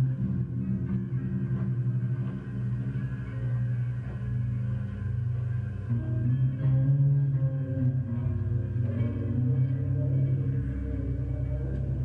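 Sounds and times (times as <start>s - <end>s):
band playing low guitar drone: 0.0s - 12.0s.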